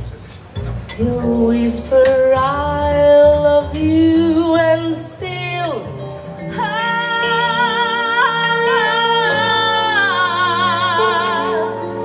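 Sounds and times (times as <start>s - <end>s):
double bass: 0.0s - 12.0s
woman singing jazz: 1.0s - 12.0s.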